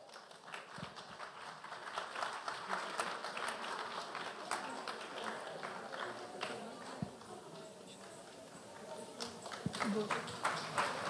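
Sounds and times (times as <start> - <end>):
faint indistinct murmuring: 2.7 - 11.0.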